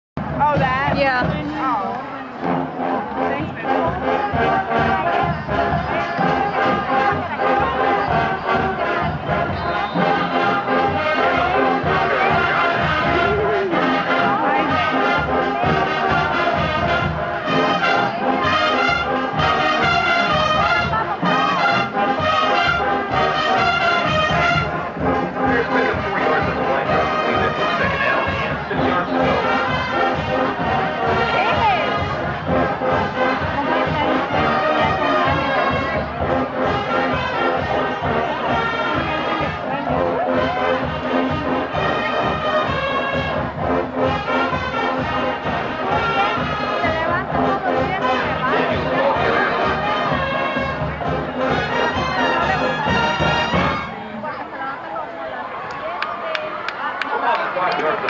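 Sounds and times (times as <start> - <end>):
marching band playing: 0.2 - 54.5.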